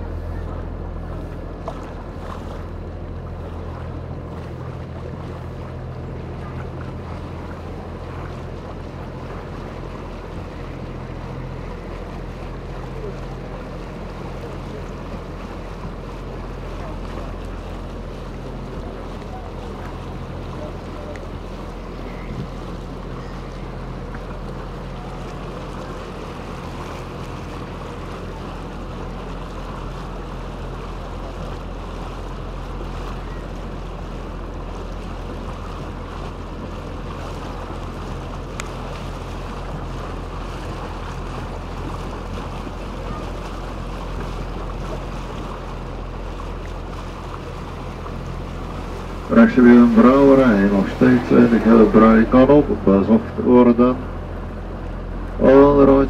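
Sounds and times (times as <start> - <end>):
boat motor humming: 0.0 - 56.0
water washing along hull: 0.0 - 56.0.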